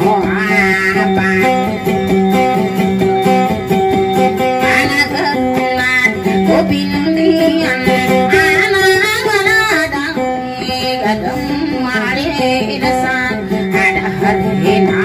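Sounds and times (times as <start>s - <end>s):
woman singing into microphone: 0.0s - 3.4s, 4.1s - 15.0s
electric guitar melody with drone: 0.0s - 15.0s.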